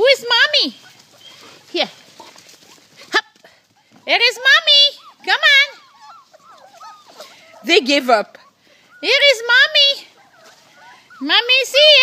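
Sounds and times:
faint rustling: 0.4 - 12.0.

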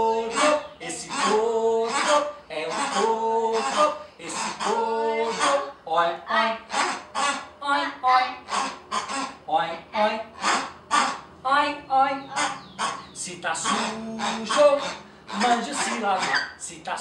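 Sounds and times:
short rhythmic vocal sounds: 0.0 - 7.0, 12.0 - 16.7
voices singing: 0.0 - 17.0.

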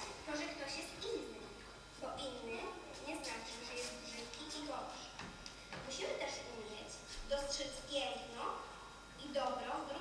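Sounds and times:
young person speaking: 0.0 - 5.2, 5.8 - 10.0.

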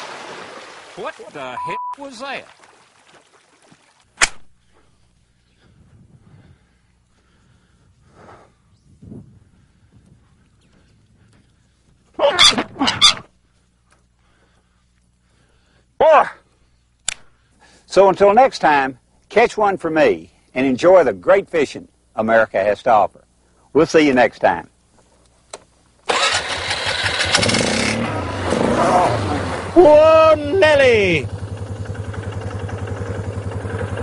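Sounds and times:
swan calling loudly: 12.2 - 13.3
atv engine running: 26.1 - 34.0.

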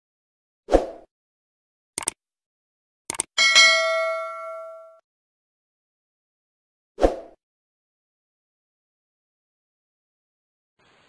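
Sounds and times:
notification bell ding: 3.4 - 5.0.

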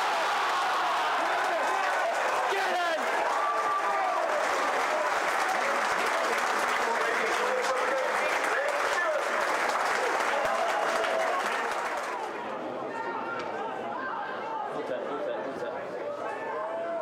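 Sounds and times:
crowd cheering and applauding: 0.0 - 12.4.

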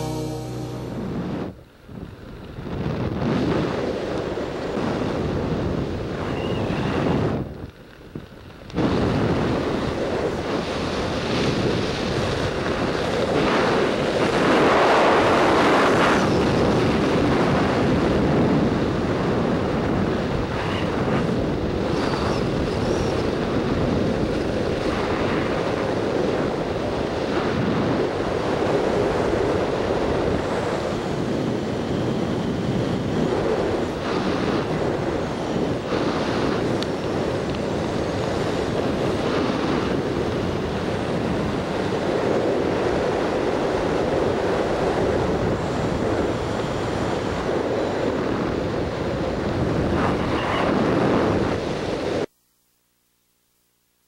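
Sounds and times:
wind buffeting microphone: 0.9 - 52.3.

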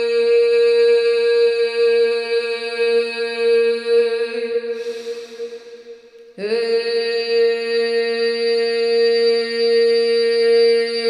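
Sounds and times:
woman chanting a held tone: 0.0 - 5.7, 6.4 - 11.0.

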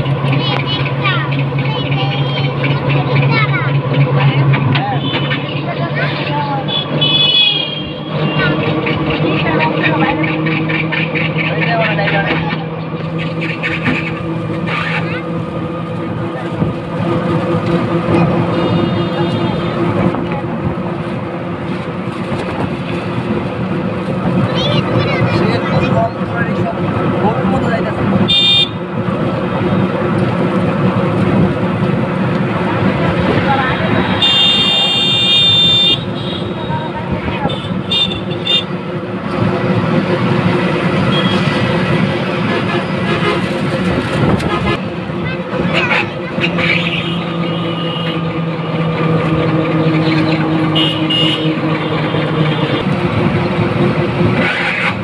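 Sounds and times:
vehicle engine hum and road noise: 0.0 - 55.0
vehicle horn: 4.8 - 5.6, 6.6 - 8.7, 18.2 - 20.3, 28.2 - 28.8, 33.8 - 38.8, 41.0 - 41.6, 42.6 - 43.8, 44.4 - 44.8, 46.4 - 48.3, 49.9 - 53.0.

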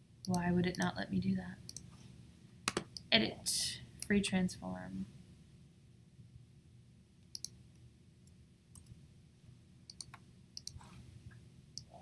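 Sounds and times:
low background hum: 0.0 - 12.0
mouse and keyboard clicks: 9.9 - 10.9.

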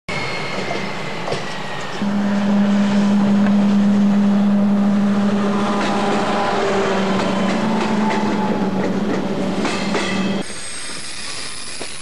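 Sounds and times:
rail vehicle running: 0.1 - 12.0
high whine: 2.0 - 8.9.

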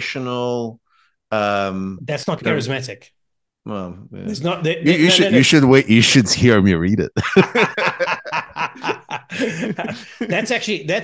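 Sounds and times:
men laughing: 7.2 - 11.0.

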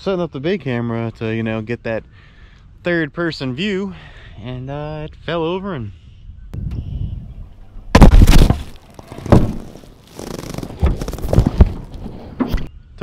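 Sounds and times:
camera crashing over: 7.9 - 12.0.

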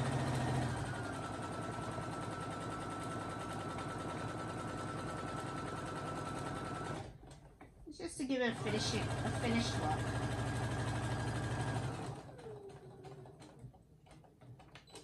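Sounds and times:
sewing machine running: 0.0 - 7.5, 8.3 - 15.0.

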